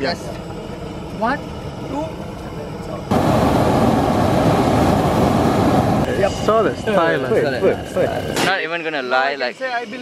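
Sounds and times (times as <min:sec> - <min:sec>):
inflator fan engine hum: 0:00.0 - 0:08.4
propane burner roaring: 0:00.0 - 0:10.0.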